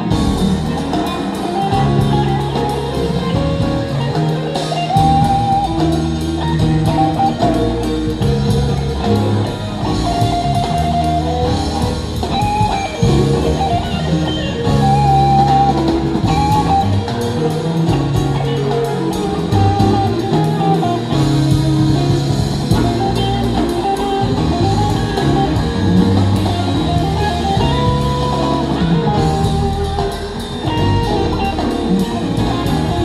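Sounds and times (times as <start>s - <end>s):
bass guitar: 0.0s - 33.0s
drum kit: 0.0s - 33.0s
electric guitar lead lines: 0.0s - 33.0s.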